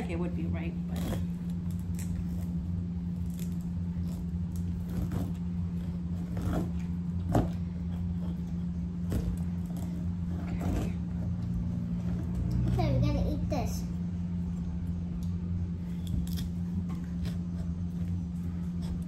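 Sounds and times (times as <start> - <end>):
steady low hum: 0.0 - 19.0
knife crunching through fruit rind: 0.8 - 12.6, 15.2 - 19.0.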